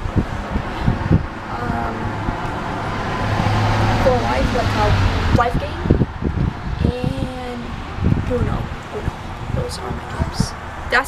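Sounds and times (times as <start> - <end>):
motor vehicle engine hum: 0.0 - 11.0.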